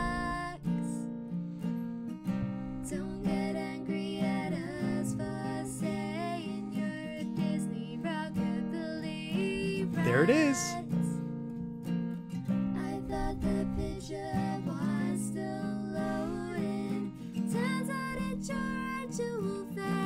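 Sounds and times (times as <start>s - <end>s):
woman singing: 0.0s - 1.1s, 2.8s - 11.2s, 12.8s - 20.0s
acoustic guitar: 0.0s - 20.0s.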